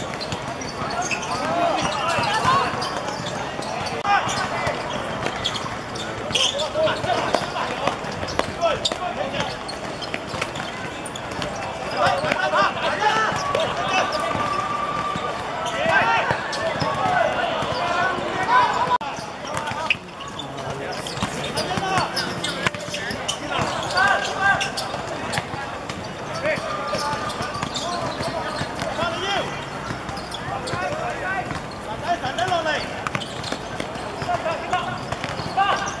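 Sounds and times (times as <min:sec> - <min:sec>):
players shouting: 0:00.0 - 0:33.0
ball kicked and bouncing: 0:20.6 - 0:23.9.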